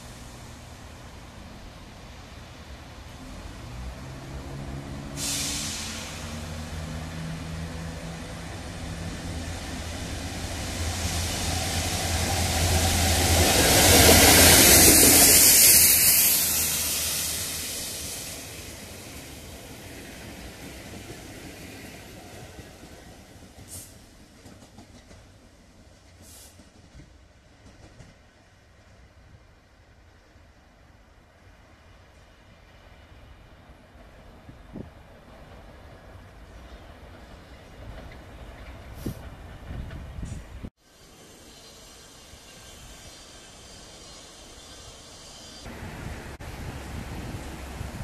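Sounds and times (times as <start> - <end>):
rushing train wheel noise: 0.0 - 29.0, 33.8 - 48.0
diesel locomotive engine: 0.0 - 48.0.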